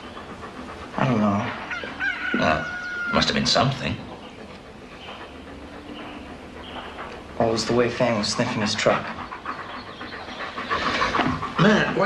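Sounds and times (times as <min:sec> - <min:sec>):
husky panting: 0:00.0 - 0:12.0.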